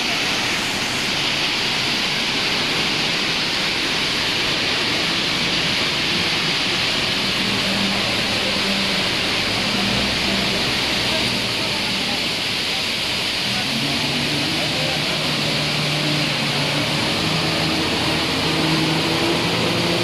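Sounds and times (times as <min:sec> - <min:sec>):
factory machinery hiss: 0:00.0 - 0:20.0.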